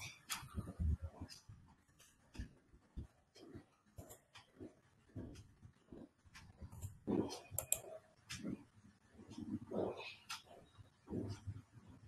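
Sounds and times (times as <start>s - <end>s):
mouse and keyboard clicking: 6.7s - 8.6s.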